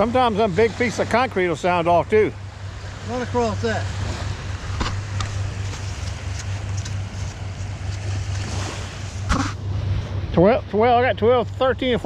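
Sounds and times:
small waves washing in: 0.0s - 10.5s
steady low hum: 0.0s - 12.0s.

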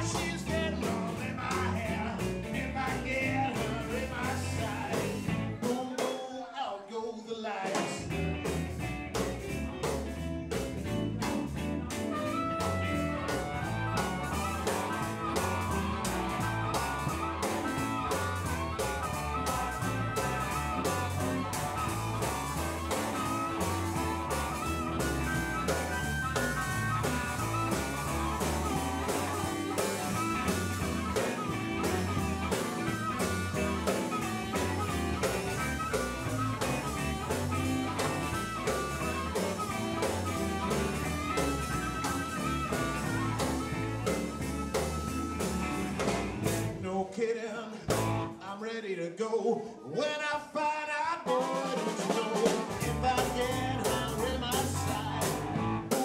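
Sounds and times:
harmonica wailing: 0.0s - 5.8s, 10.4s - 46.8s, 51.3s - 56.0s
bass guitar: 0.0s - 6.2s, 7.7s - 47.0s, 47.8s - 48.4s, 51.3s - 56.0s
electric guitars: 0.0s - 6.2s, 7.2s - 46.9s, 47.7s - 48.4s, 51.2s - 56.0s
drums: 0.0s - 48.6s, 49.9s - 56.0s.

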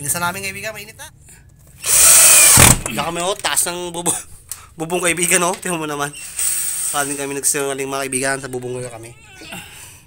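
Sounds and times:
power drill driving a screw: 1.8s - 2.9s, 6.2s - 7.3s.

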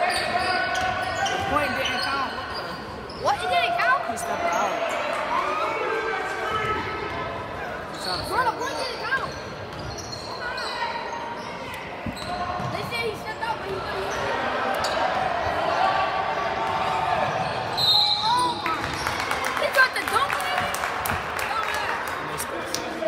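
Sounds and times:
sneaker squeaks: 0.0s - 4.9s, 7.6s - 15.2s, 16.8s - 19.2s.

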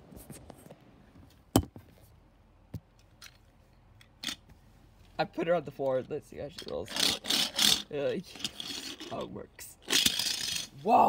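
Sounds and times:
toy car rolling on wooden floor: 6.5s - 10.8s.

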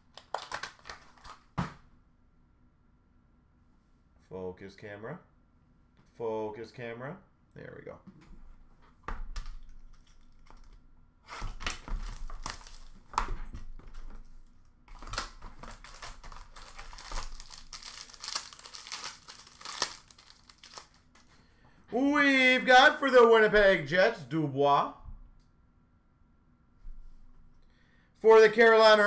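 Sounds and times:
plastic wrapping crinkling and tearing: 0.0s - 1.5s, 9.6s - 21.4s.

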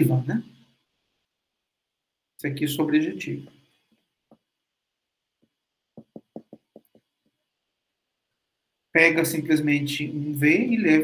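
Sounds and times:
stylus tapping on tablet screen: 4.2s - 4.6s, 5.4s - 7.4s.

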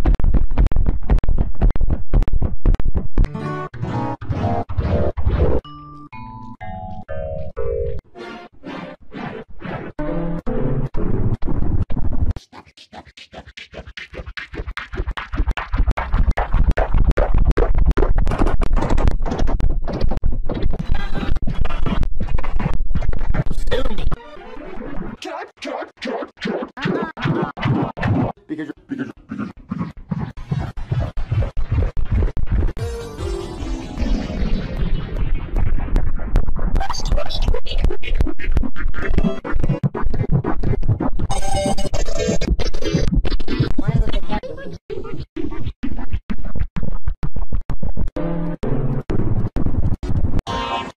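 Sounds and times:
warped voice fragments: 23.5s - 27.3s, 28.2s - 29.6s, 32.8s - 39.8s, 41.3s - 44.8s
stuttering remixed music: 29.2s - 44.0s
distorted stuttering logo jingle: 32.8s - 35.9s.

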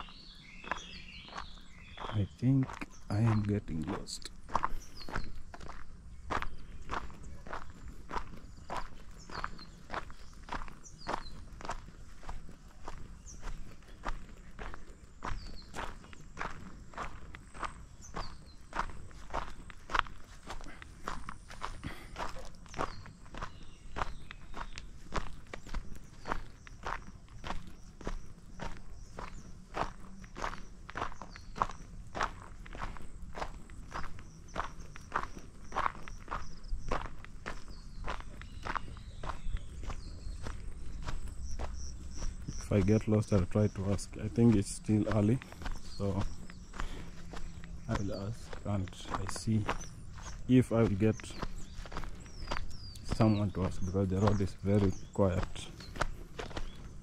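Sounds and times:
footsteps on dirt road: 0.0s - 57.0s.

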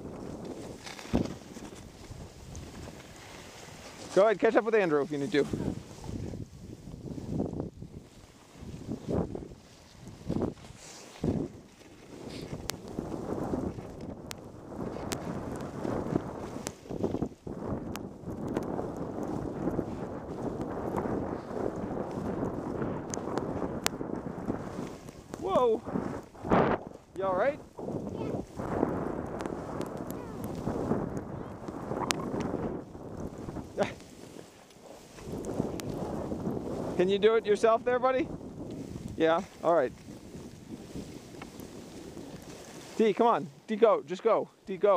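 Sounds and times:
wind on microphone: 0.0s - 43.7s
skis scraping over snow: 0.0s - 44.9s.

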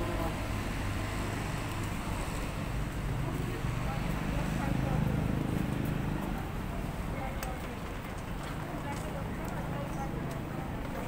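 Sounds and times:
road hiss from passing vehicles: 0.0s - 11.0s
traffic engine rumble: 0.0s - 11.0s.

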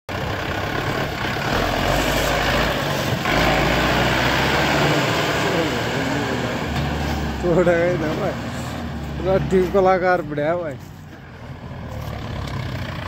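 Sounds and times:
tractor diesel engine under load: 0.1s - 13.0s
voices: 4.7s - 10.9s.

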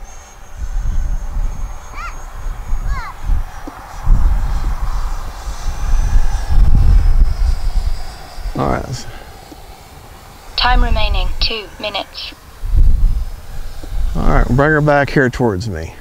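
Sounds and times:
model jet fan whine overhead: 0.0s - 16.0s
wind gusts on microphone: 0.0s - 16.0s.

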